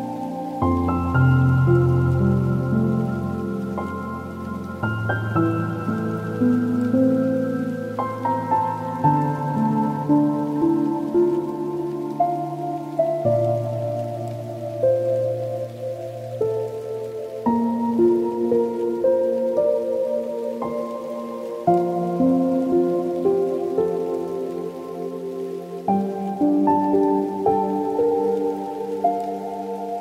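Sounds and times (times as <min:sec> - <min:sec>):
slow soft piano music: 0:00.0 - 0:30.0.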